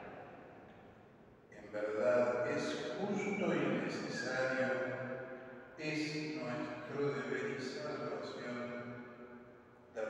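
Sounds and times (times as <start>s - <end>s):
man praying aloud: 1.6s - 4.8s.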